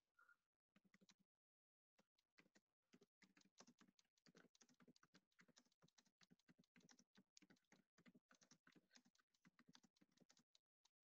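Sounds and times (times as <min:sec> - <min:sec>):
faint keyboard typing: 0:00.2 - 0:01.3, 0:01.9 - 0:11.0.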